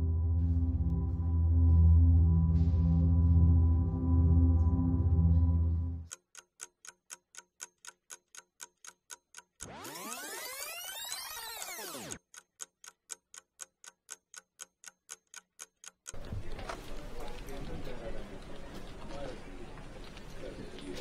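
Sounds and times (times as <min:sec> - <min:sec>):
clock ticking: 0:06.1 - 0:16.3.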